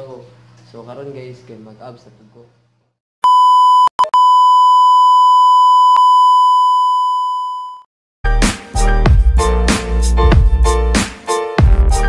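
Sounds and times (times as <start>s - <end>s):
loud steady electronic beep: 3.2s - 7.8s
music with heavy beat: 8.3s - 12.0s.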